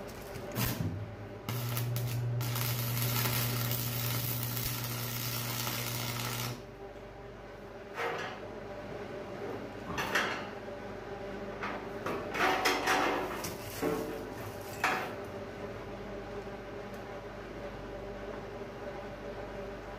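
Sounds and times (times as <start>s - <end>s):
arc welding crackling hiss: 0.0s - 6.6s
low electrical buzz: 0.0s - 12.0s.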